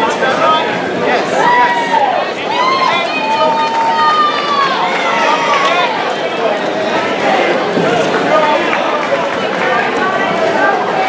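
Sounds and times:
people shouting: 1.3s - 7.5s.

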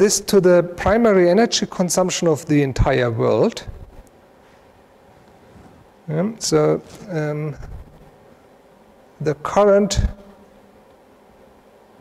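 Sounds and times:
faint steady hum: 0.0s - 12.0s
person speaking: 6.0s - 7.8s.

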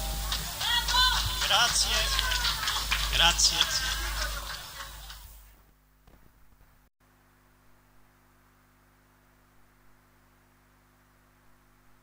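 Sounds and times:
dance band music: 0.0s - 5.4s
voices in a room: 0.5s - 5.8s.

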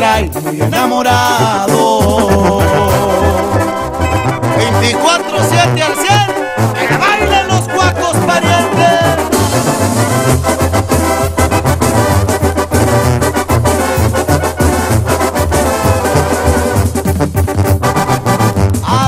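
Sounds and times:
brass horns playing melody: 0.0s - 19.0s
tuba bass line: 0.0s - 19.0s
steady drum beat: 0.3s - 19.0s.

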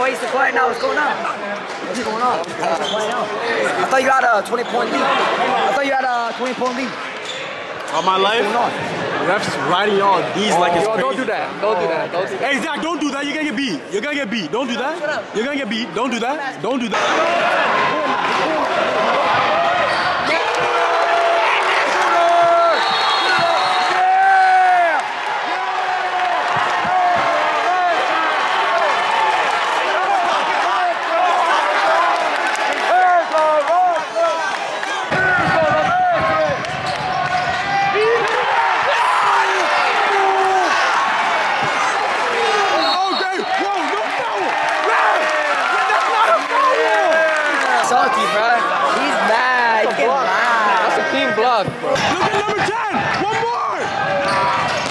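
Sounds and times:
crowd shouting and cheering: 0.0s - 54.9s.

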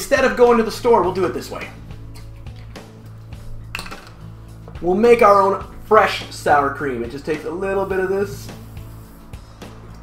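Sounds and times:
quiet background music: 0.0s - 10.0s
plastic bottle cap clicking: 3.7s - 4.2s.

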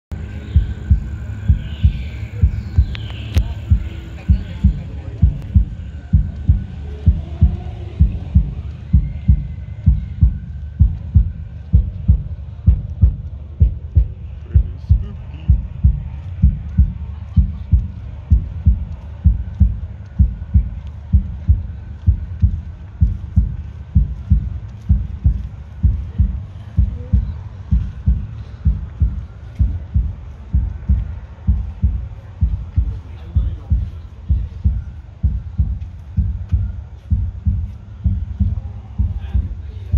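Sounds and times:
deep heartbeat-like thumping: 0.1s - 39.9s.

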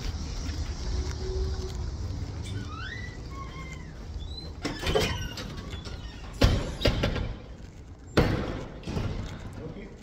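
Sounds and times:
gliding squeaks: 0.0s - 8.1s.

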